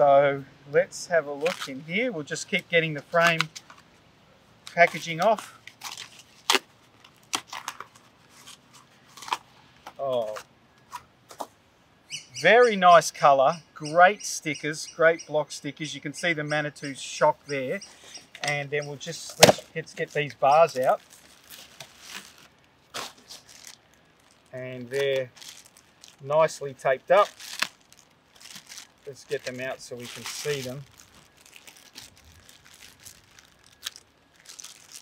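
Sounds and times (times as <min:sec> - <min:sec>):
tape ripping: 0:01.4 - 0:01.8, 0:04.7 - 0:09.4, 0:19.3 - 0:35.0
packaging rustling: 0:04.7 - 0:10.4, 0:19.0 - 0:35.0.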